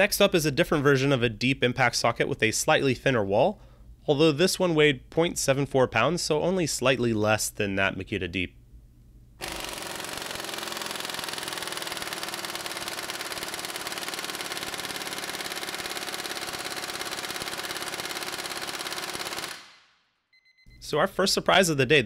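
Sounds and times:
impact wrench hammering: 9.4s - 19.7s.

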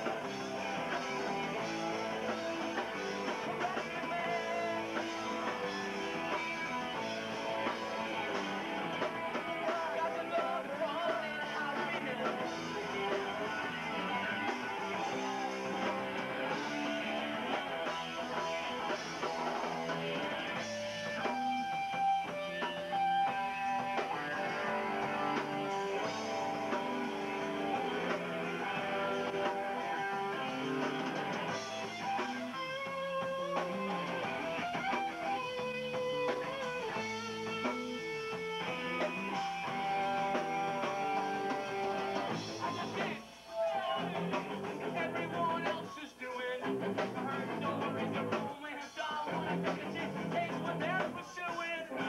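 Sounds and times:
electric guitars: 0.0s - 52.0s
punk band playing live: 0.0s - 52.0s.

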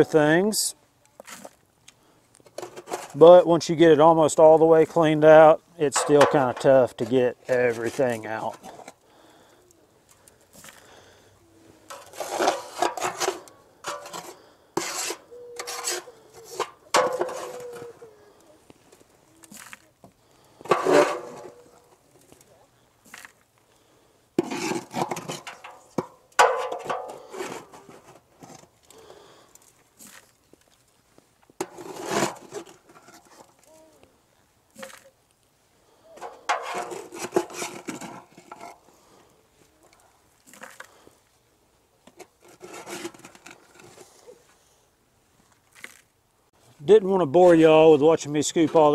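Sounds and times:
metal tool scraping ash: 2.5s - 3.4s, 5.8s - 9.0s, 11.9s - 18.0s, 20.6s - 21.9s, 24.4s - 28.7s, 31.6s - 33.6s, 36.2s - 38.9s, 42.1s - 44.2s.

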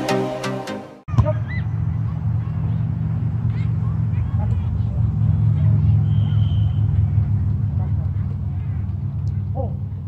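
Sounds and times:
faint voices: 1.1s - 10.0s
steady low rumble: 1.2s - 10.0s.

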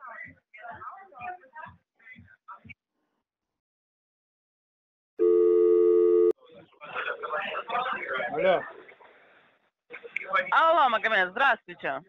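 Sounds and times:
telephone ringing tone: 5.2s - 6.4s.

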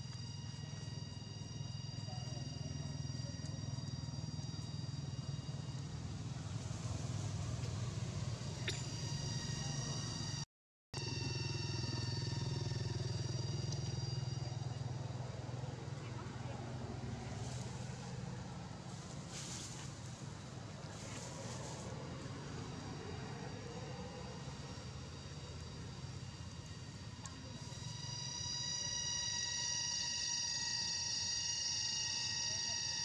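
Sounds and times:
high-pitched whine: 0.0s - 10.4s, 11.0s - 15.9s, 16.6s - 33.0s.

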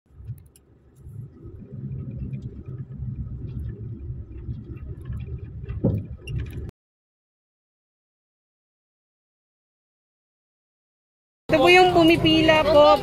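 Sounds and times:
light rattles: 0.1s - 6.7s
vehicle rumbling over rough road: 0.1s - 6.7s.

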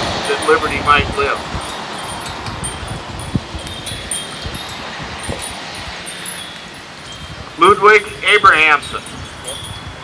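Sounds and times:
wind rumbling on microphone: 0.0s - 10.0s
faint high tinkling tones: 0.3s - 10.0s.

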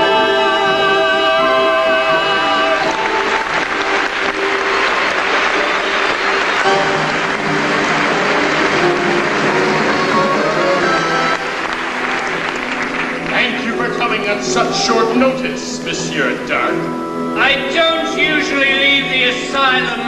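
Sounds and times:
audience applauding: 0.0s - 15.5s
orchestra playing: 0.0s - 20.0s.

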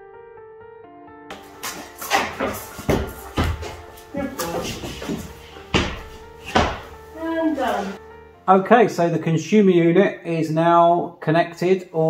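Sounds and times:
soft instrumental music: 0.0s - 10.5s
plasterboard sheets scraping: 1.4s - 8.0s
plasterboard knocks: 1.8s - 7.0s.

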